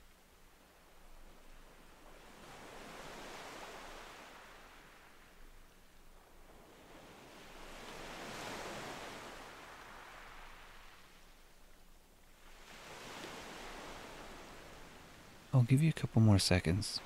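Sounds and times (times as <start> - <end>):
faint ocean waves washing in: 0.0 - 17.0.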